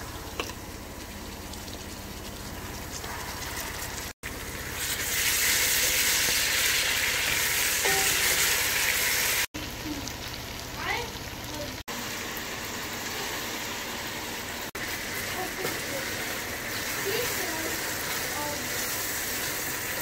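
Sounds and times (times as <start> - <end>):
onions sizzling in oil: 0.0 - 20.0.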